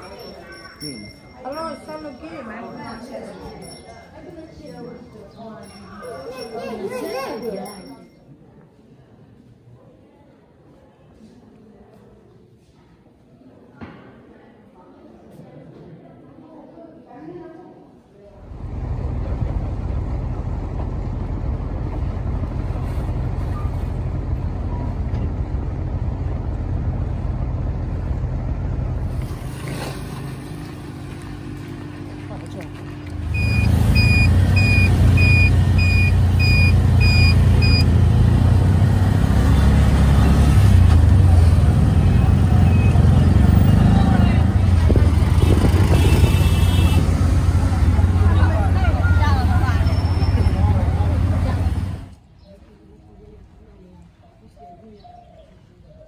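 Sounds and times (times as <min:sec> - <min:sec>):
street traffic: 0:00.0 - 0:08.4, 0:18.3 - 0:56.0
tuk-tuk engine: 0:18.4 - 0:52.5
boat engine running: 0:18.6 - 0:52.1
short electronic beeps: 0:33.3 - 0:37.9.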